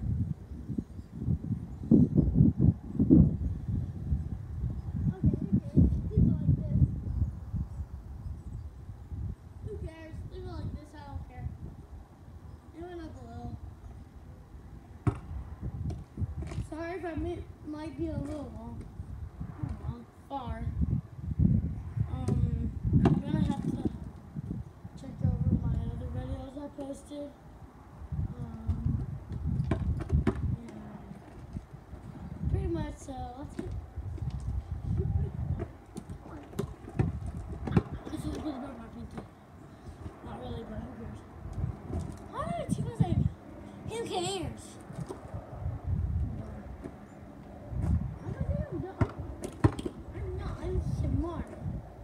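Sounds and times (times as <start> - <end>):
wind buffeting microphone: 0.0 - 52.0
sharp knocks: 15.0 - 16.0
basketball bouncing thumps: 15.0 - 16.6, 35.6 - 38.5, 49.0 - 50.0.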